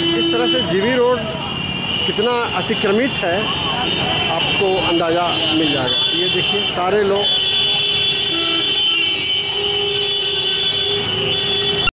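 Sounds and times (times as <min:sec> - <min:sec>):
vehicle horn toots: 0:00.0 - 0:02.1, 0:04.2 - 0:11.9
city street traffic: 0:00.0 - 0:12.0.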